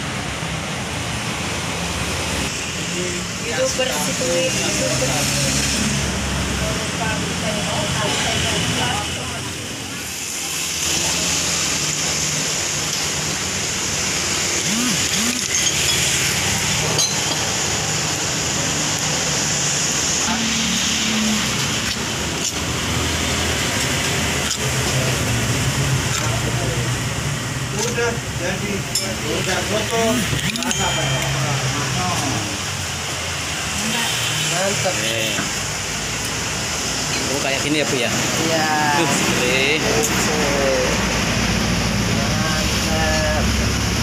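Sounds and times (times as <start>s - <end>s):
street traffic noise: 0.0s - 44.0s.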